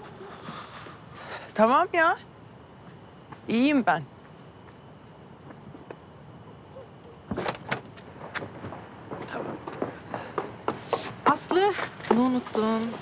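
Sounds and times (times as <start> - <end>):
low outdoor hush: 0.0 - 7.3.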